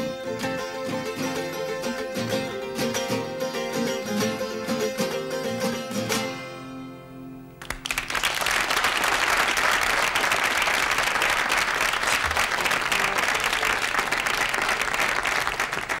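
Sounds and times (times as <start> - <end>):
audience applauding: 7.6 - 16.0.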